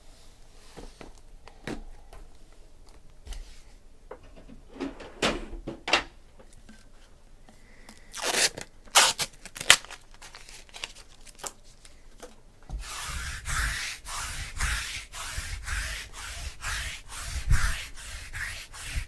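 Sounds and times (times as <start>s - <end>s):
short ripping strokes: 8.1s - 9.8s
lint roller rubbing cloth: 12.7s - 19.0s.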